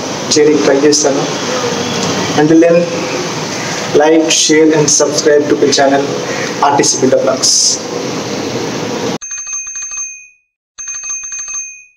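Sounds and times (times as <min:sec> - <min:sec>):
notification bell: 0:09.2 - 0:11.9.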